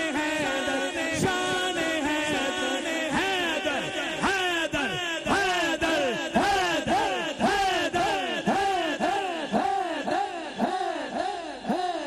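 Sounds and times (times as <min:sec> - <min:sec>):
man chanting through microphone: 0:00.0 - 0:12.0.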